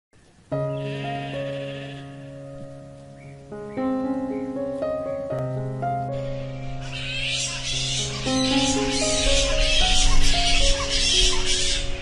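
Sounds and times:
plucked-string music: 0.5 - 12.0
sheep bleating: 0.7 - 2.3.

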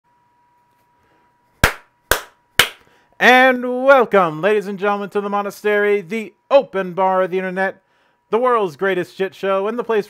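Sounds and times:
sharp crack: 1.6 - 2.8.

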